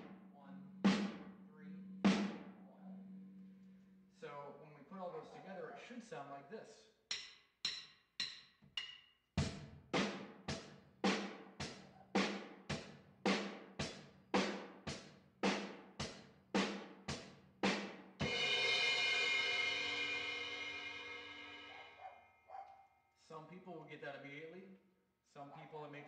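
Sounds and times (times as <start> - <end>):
drum kit rock beat: 0.0 - 0.2, 0.8 - 1.4, 2.1 - 2.6, 7.1 - 22.1
cymbal crash ringing: 18.2 - 22.1.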